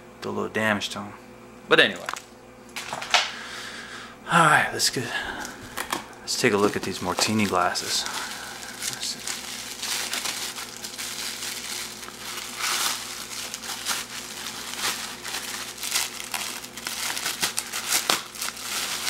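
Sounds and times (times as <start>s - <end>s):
bubble wrap crinkling: 5.4s - 19.0s.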